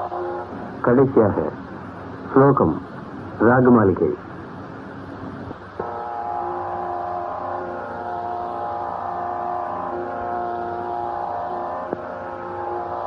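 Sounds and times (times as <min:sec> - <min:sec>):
musical drone: 0:00.0 - 0:01.6, 0:05.8 - 0:13.0.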